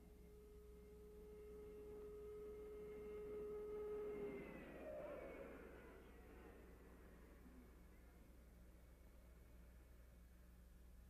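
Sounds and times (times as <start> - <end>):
jet engine high-pitched whine: 0.0 - 9.7.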